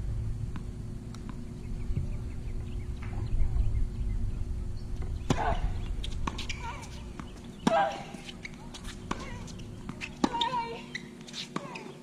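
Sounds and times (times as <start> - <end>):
racket striking tennis ball: 5.3 - 11.8.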